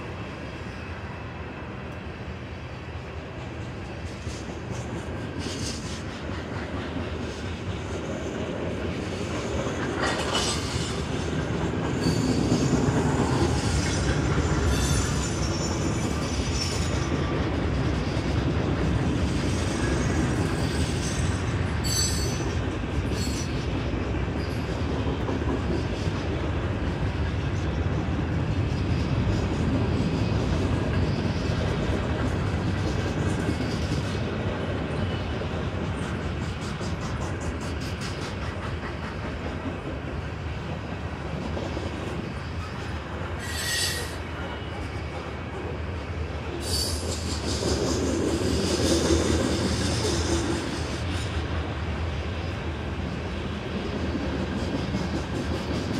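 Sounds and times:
train wheels rumbling on rails: 0:00.0 - 0:55.9
rail-joint clicks: 0:03.3 - 0:51.7, 0:53.8 - 0:55.9
wheel squeal: 0:19.5 - 0:22.5, 0:42.5 - 0:44.9, 0:46.6 - 0:51.2.

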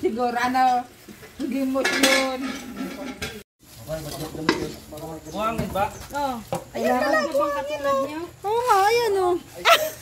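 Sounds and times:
metal pots scrubbed and scraped: 0:00.4 - 0:03.4.

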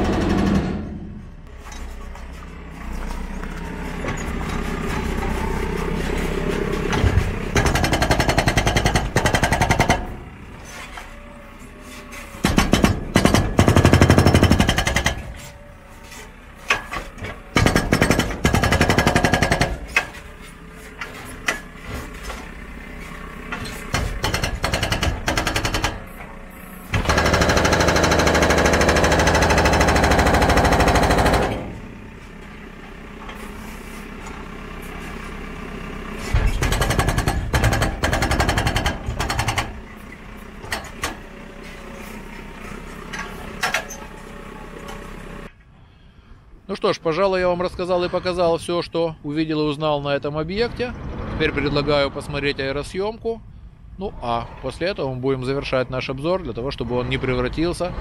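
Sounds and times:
hydraulic breaker hammering concrete: 0:00.0 - 0:01.2, 0:06.9 - 0:10.2, 0:12.4 - 0:15.4, 0:17.5 - 0:20.2, 0:23.9 - 0:26.1, 0:26.9 - 0:31.9, 0:36.3 - 0:39.8
diesel engine running: 0:00.0 - 0:58.0.

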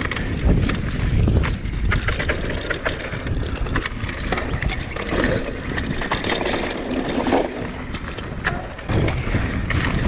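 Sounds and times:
bike knocks and rattles: 0:00.0 - 0:10.0
bike tyres rumbling on dirt: 0:00.0 - 0:10.0.

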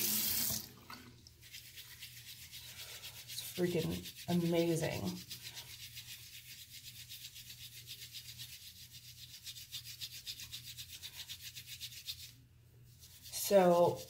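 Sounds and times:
brush scrubbing on textured mat: 0:01.4 - 0:14.0.

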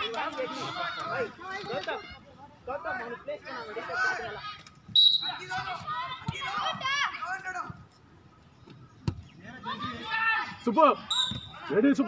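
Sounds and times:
people shouting: 0:09.6 - 0:11.9.

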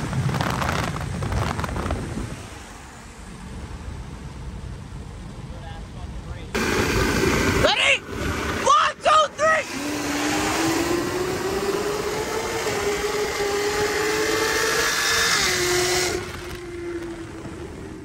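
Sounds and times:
wind roar: 0:00.0 - 0:03.6, 0:09.6 - 0:18.0
car engines accelerating: 0:00.0 - 0:18.0
people shouting: 0:08.6 - 0:09.8.

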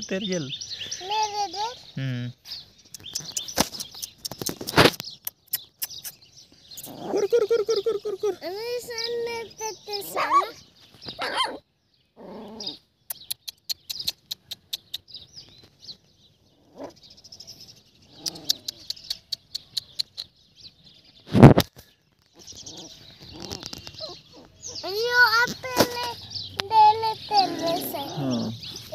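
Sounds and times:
dogs barking: 0:11.2 - 0:11.6.

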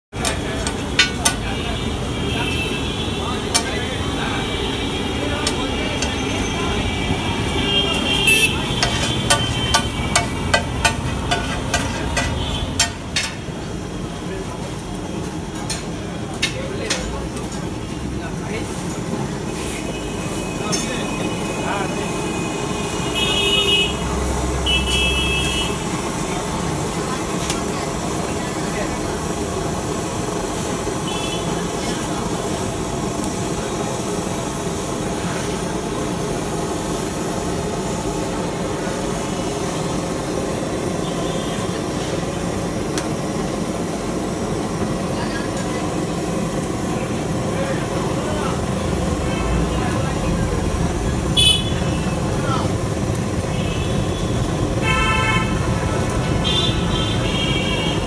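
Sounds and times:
steady traffic: 0:00.1 - 0:58.0
vehicle horns honking: 0:01.4 - 0:13.0, 0:19.6 - 0:25.9, 0:31.0 - 0:31.6, 0:41.0 - 0:41.8, 0:51.3 - 0:52.0, 0:53.5 - 0:55.8, 0:56.4 - 0:58.0.

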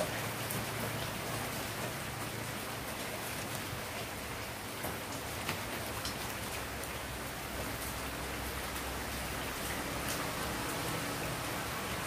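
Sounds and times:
steady rain-like hiss: 0:00.0 - 0:12.0.

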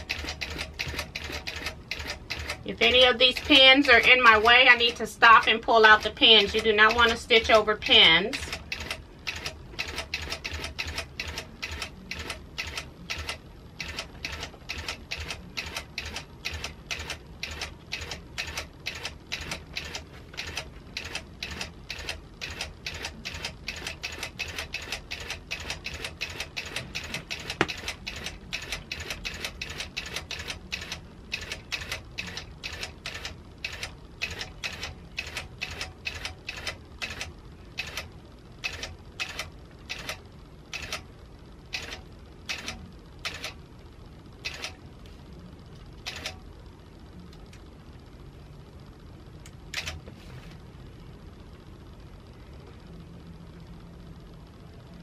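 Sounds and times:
sewing machine needle clicks: 0:00.1 - 0:02.6, 0:08.5 - 0:40.2.

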